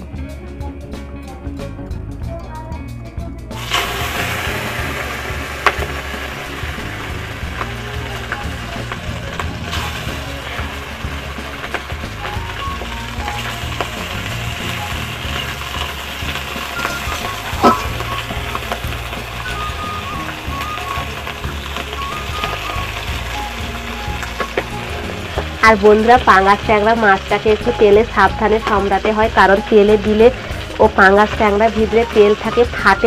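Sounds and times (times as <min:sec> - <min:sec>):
fish sizzling in hot oil: 0:03.6 - 0:33.0.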